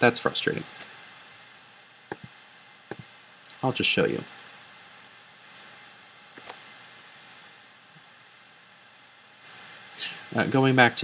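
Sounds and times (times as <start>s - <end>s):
faint steady hiss: 0.0s - 11.0s
computer mouse clicks: 6.4s - 6.6s.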